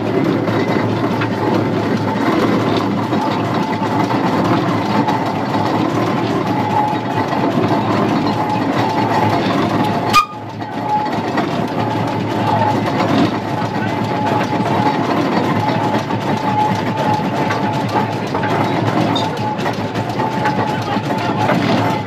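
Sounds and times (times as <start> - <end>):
clatter of motion and gearing: 0.0 - 22.0
steam engine running: 0.0 - 22.0.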